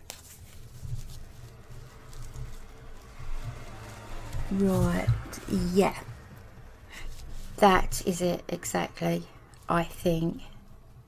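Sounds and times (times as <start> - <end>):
fabric and card handling: 0.0 - 10.8
dull low bumps: 0.4 - 8.1.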